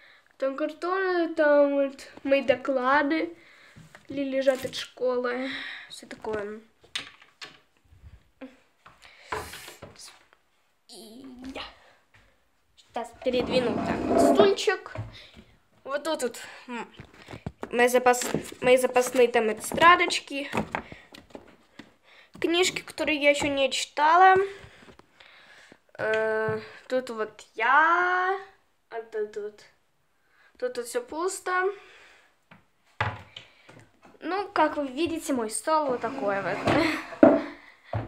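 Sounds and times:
faint room noise: 0.0 - 38.0.

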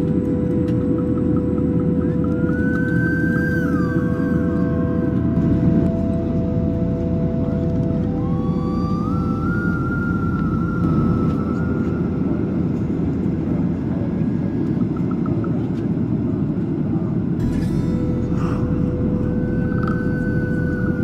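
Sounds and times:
faint whining tone: 0.0 - 21.0
jet engine rumble and rushing air: 0.0 - 21.0.

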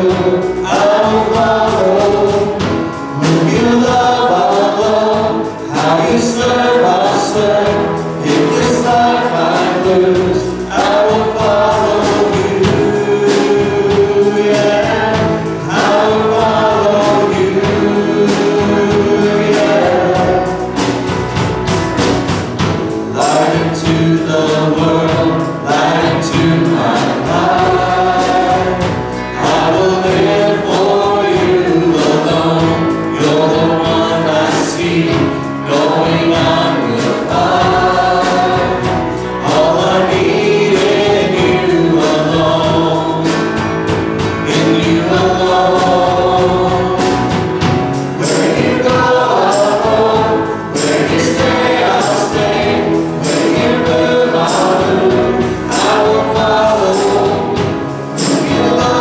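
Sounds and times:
group singing worship song: 0.0 - 59.0
keyboard and band accompaniment: 0.0 - 59.0.

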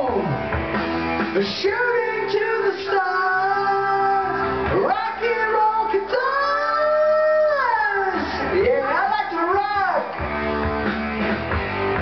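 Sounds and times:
backing track: 0.0 - 12.0
man singing rock vocal: 1.3 - 10.1.

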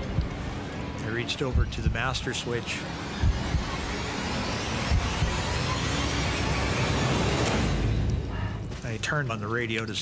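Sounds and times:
low rumbling drone: 0.0 - 9.0
rush of noise: 2.7 - 8.6.

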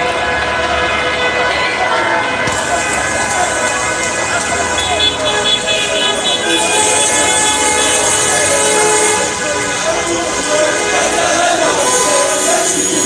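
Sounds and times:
crowd voices: 0.0 - 13.0
horn blasts: 0.0 - 13.0.

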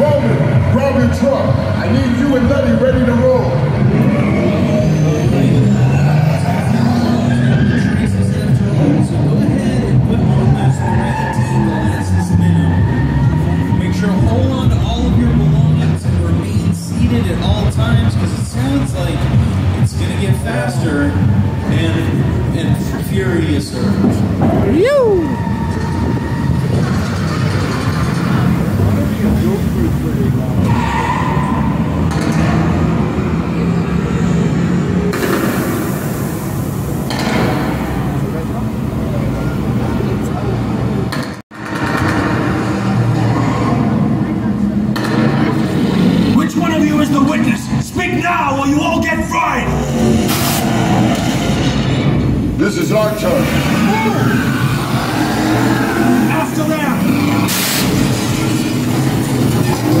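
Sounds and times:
ride show soundtrack: 0.0 - 32.0
vehicle engine rumble over speakers: 0.0 - 60.0.

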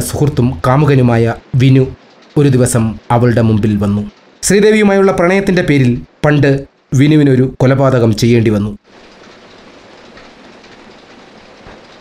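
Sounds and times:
noisy background ambience: 0.0 - 12.0.

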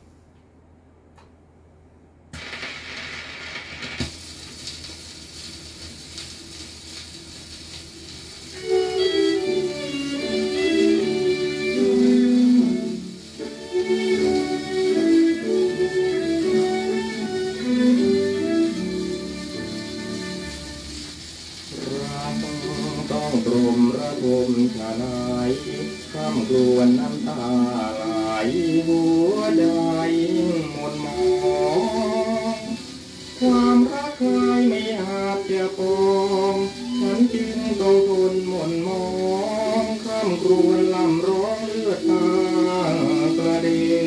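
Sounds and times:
record surface hiss and crackle: 0.0 - 44.0
record changer mechanical noise: 2.3 - 44.0
band music: 8.5 - 44.0.

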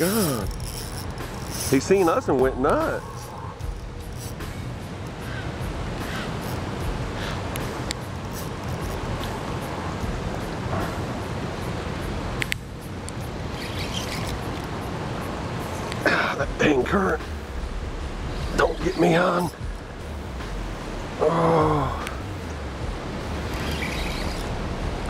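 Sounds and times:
fast-flowing river water: 0.0 - 25.0.

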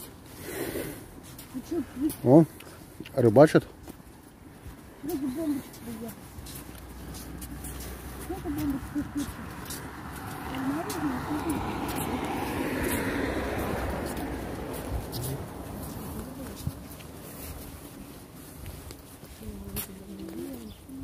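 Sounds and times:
faint voices: 4.9 - 17.7
car driving past: 6.8 - 17.4.

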